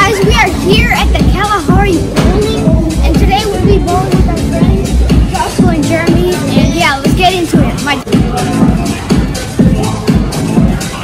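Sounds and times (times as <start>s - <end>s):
child talking: 0.0s - 8.4s
background music: 0.0s - 11.0s.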